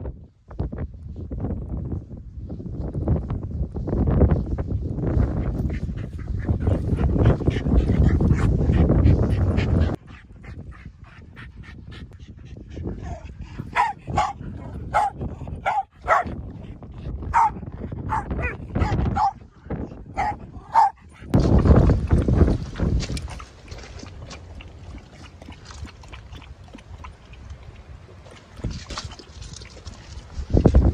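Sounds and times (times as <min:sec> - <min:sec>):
dog yapping: 0:13.7 - 0:16.3, 0:20.2 - 0:21.0.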